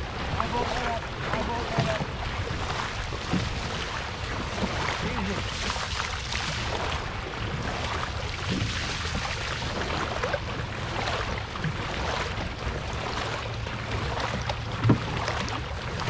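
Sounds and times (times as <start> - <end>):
paddles splashing in water: 0.0 - 16.0
water noise: 0.0 - 16.0.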